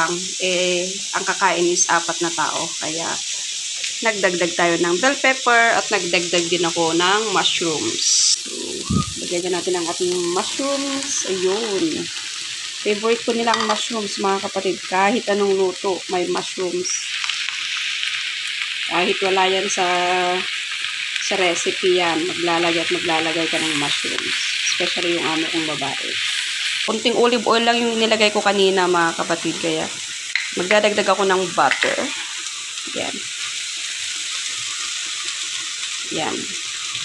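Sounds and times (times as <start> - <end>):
mushrooms sizzling in oil: 0.0 - 37.0.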